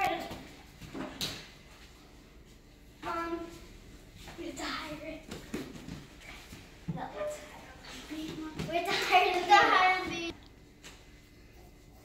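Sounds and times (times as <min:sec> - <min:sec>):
children's voices: 0:07.0 - 0:10.3.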